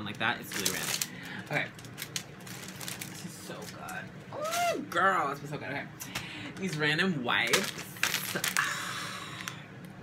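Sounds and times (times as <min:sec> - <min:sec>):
plastic packaging rustling: 0:00.0 - 0:04.7, 0:06.7 - 0:08.8
air conditioner hum: 0:00.0 - 0:10.0.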